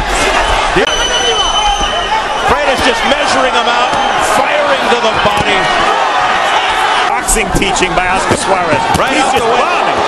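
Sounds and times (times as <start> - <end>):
crowd yelling and cheering: 0.0 - 10.0
high whistle-like tone: 0.4 - 2.8.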